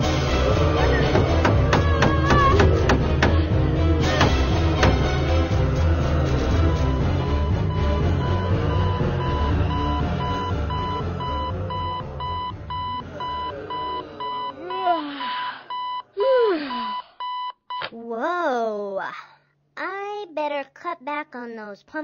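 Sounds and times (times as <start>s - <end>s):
music: 0.0s - 14.5s
digital alarm clock beeping: 6.8s - 16.1s, 16.7s - 17.6s.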